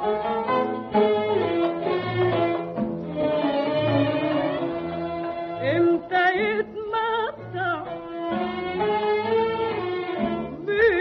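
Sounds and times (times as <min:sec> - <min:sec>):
woman singing with vibrato: 0:05.6 - 0:07.9, 0:10.6 - 0:11.0.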